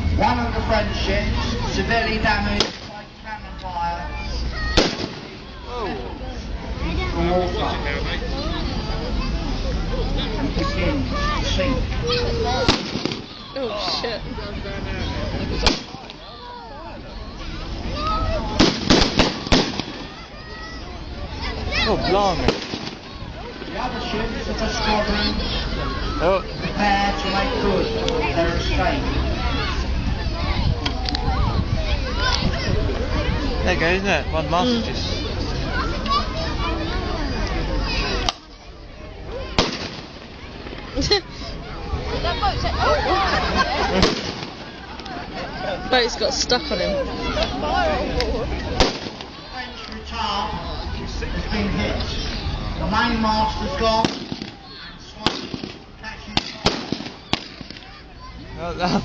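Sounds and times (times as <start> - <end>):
voices: 0.0 - 59.0
miniature cannon bang: 4.8 - 5.4, 12.6 - 13.4, 15.6 - 16.2, 18.6 - 20.2, 22.4 - 23.0, 39.6 - 40.3, 44.0 - 44.8, 48.8 - 49.3, 54.0 - 55.8, 56.4 - 57.9
sharp bang: 4.8 - 5.5, 39.6 - 40.3.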